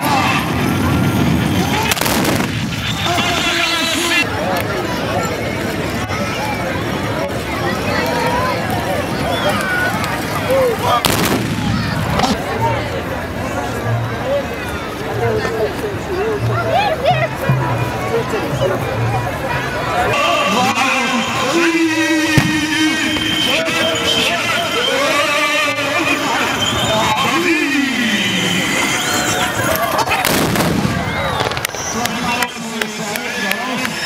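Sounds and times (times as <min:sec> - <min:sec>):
crowd shouting: 0:00.0 - 0:34.0
musket volley crack: 0:01.6 - 0:04.0, 0:10.9 - 0:12.4, 0:22.3 - 0:23.5, 0:30.1 - 0:32.5.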